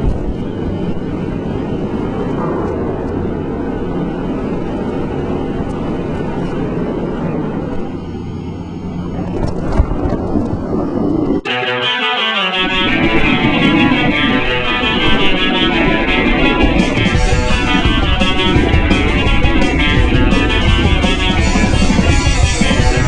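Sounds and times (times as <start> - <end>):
lift machinery rumble: 0.0 - 11.5, 12.2 - 23.0
guitar music: 11.4 - 23.0.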